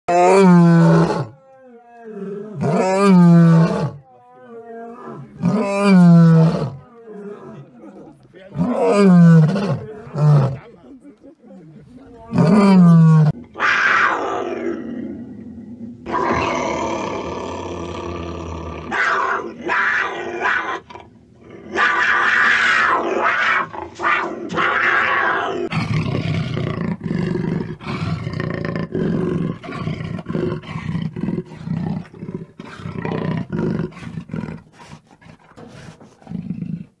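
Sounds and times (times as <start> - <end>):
cougar calling: 12.1 - 15.0, 16.0 - 37.0.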